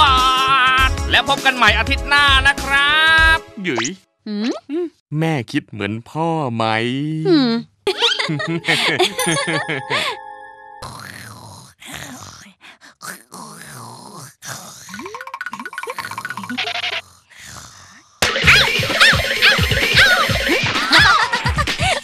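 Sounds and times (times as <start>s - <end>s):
cartoon background music: 0.0s - 4.0s, 7.9s - 11.2s, 18.2s - 21.8s
cartoon boy laughing: 7.3s - 10.2s, 15.8s - 17.0s, 18.5s - 22.0s
comic sliding-pitch sound effects: 7.9s - 11.0s.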